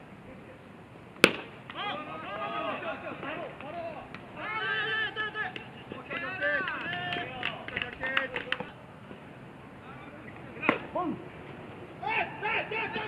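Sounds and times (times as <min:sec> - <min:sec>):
players shouting drawn-out calls: 0:01.3 - 0:08.8, 0:11.9 - 0:13.0.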